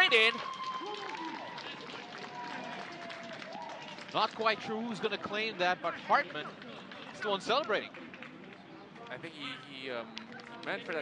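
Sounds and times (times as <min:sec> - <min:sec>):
commentator's voice: 0:00.0 - 0:00.4
distant shouts and calls of players: 0:00.0 - 0:11.0.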